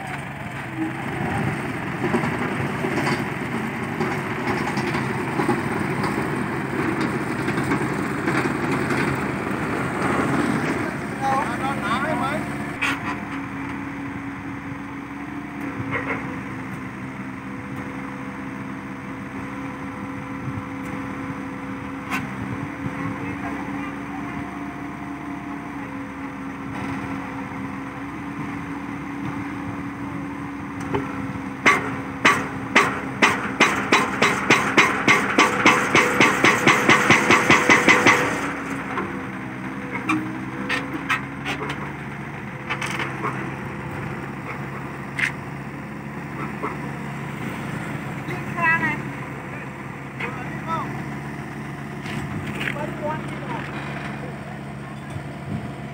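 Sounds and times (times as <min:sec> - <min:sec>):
excavator engine running: 0:00.0 - 0:55.9
people's voices: 0:10.7 - 0:13.0, 0:22.7 - 0:24.7, 0:48.2 - 0:51.1, 0:52.1 - 0:55.3.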